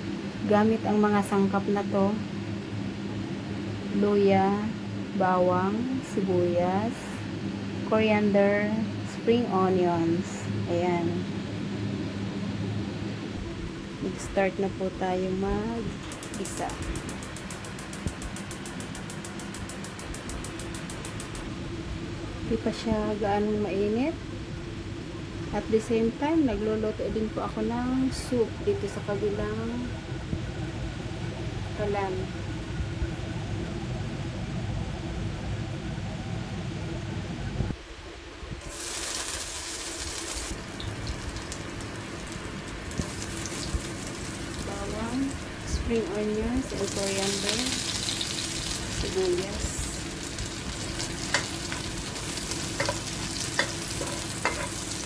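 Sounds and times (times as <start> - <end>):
gas burner rumble and hiss: 0.0 - 55.0
ginger sizzling in hot oil: 38.6 - 55.0
spatula stirring in wok: 50.2 - 55.0.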